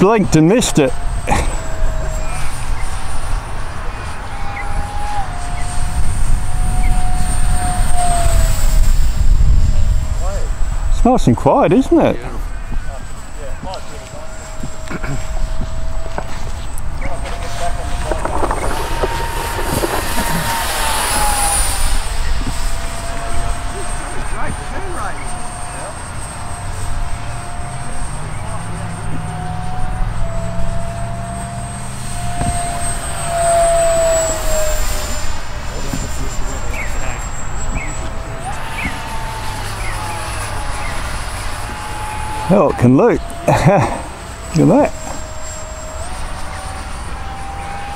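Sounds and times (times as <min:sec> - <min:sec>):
electric ducted fan whining: 0:00.0 - 0:47.9.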